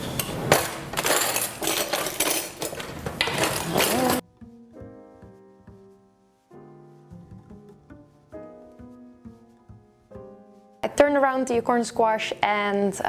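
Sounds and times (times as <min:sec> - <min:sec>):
kitchen handling clinks and clatters: 0:00.1 - 0:04.2
soft piano music: 0:03.8 - 0:12.2.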